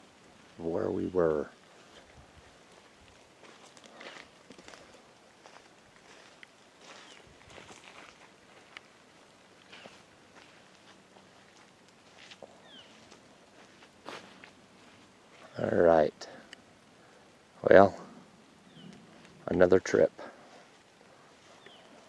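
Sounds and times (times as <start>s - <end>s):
faint rustles: 0.0s - 22.0s.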